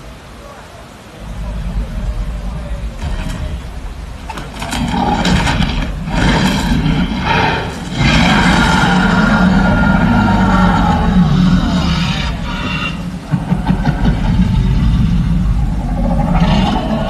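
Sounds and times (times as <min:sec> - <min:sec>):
deep rumble: 0:00.9 - 0:17.0
dinosaur growls and roar: 0:00.9 - 0:17.0.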